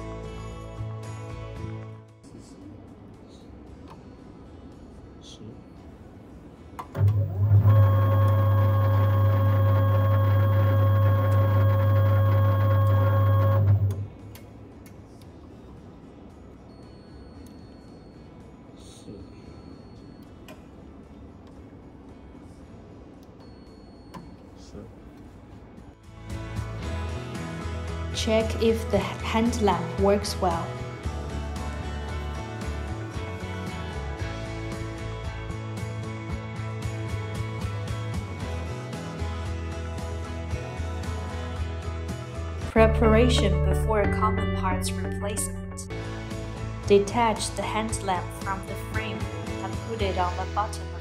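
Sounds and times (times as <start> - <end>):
electric motor hum: 7.0 - 14.2.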